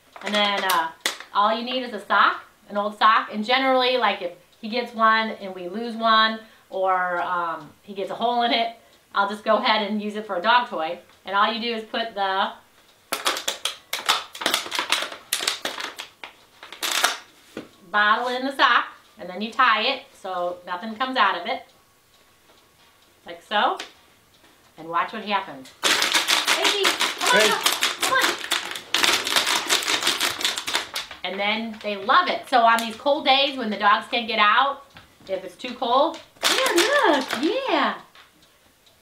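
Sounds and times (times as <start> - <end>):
plastic bottle crinkling: 0.0 - 1.3, 13.1 - 17.3, 25.8 - 32.0, 36.1 - 37.6.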